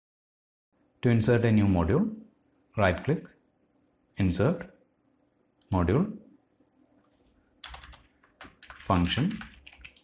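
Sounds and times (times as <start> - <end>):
computer keyboard keystrokes: 7.1 - 10.0.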